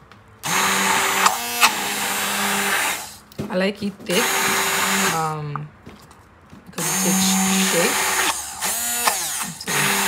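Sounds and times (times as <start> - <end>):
stick blender motor running: 0.4 - 3.2, 4.1 - 5.3, 6.8 - 10.0.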